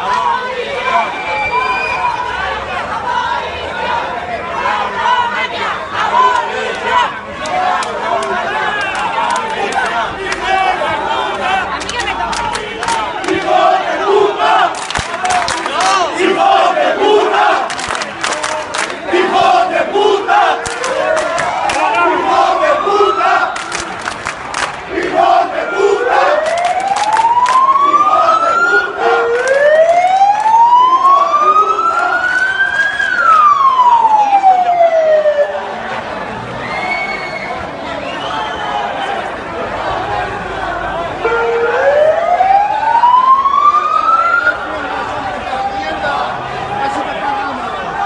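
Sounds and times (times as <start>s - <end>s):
crowd shouting: 0.0s - 48.0s
siren wailing: 20.4s - 23.8s, 25.9s - 35.6s, 41.2s - 44.9s.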